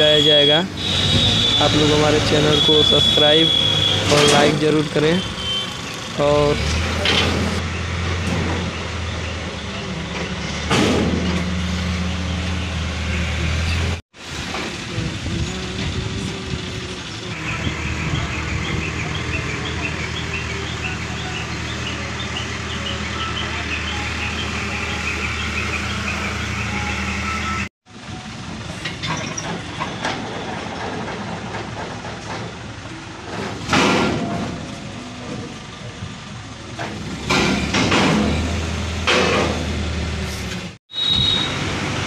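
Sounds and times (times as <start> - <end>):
crane diesel engine running: 0.0 - 42.0
rushes of engine noise: 0.0 - 42.0.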